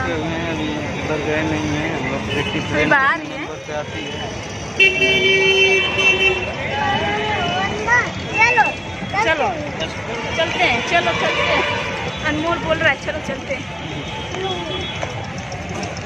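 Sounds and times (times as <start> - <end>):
crowd chatter: 0.0 - 16.0
traffic noise: 0.0 - 16.0
vehicle horn honk: 4.8 - 8.8, 10.2 - 12.4.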